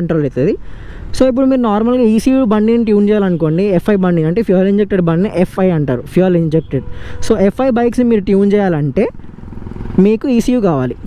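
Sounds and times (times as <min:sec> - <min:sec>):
man talking: 0:00.0 - 0:00.6, 0:01.2 - 0:09.2, 0:10.0 - 0:11.0
vehicle engine rumble: 0:00.0 - 0:11.0.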